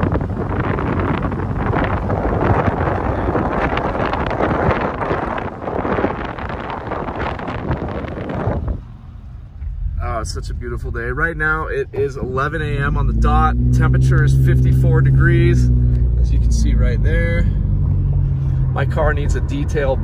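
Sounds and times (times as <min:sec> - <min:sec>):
car road noise: 0:00.0 - 0:20.0
low car hum: 0:00.0 - 0:20.0
wind rushing over microphone: 0:00.0 - 0:20.0.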